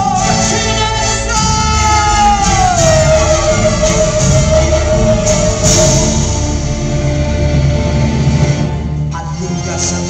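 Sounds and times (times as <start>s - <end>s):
band accompaniment: 0.0s - 10.0s.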